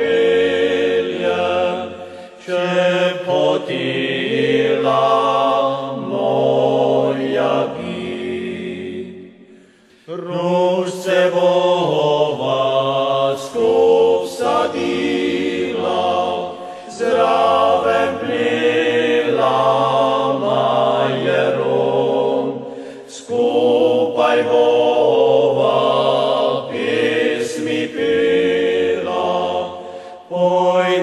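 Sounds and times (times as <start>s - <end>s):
choir singing: 0.0s - 31.0s.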